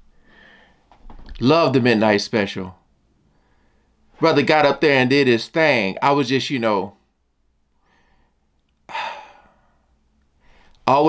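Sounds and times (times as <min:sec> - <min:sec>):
man sighing: 0:08.9 - 0:09.8.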